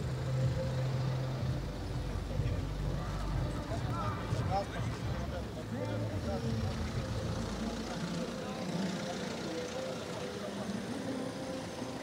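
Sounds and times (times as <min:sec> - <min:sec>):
car engine and road rumble: 0:00.0 - 0:12.0
crowd chattering: 0:00.0 - 0:12.0.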